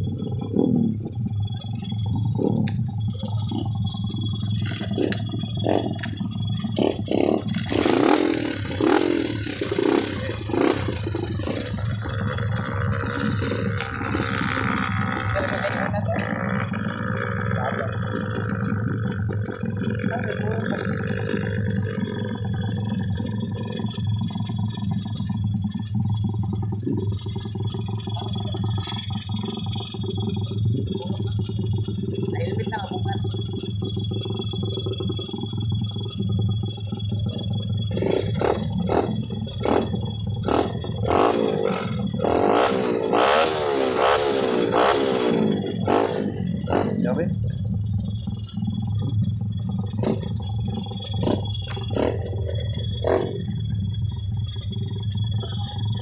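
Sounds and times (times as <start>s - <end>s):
dirt motorcycle engines revving: 0.0s - 56.0s.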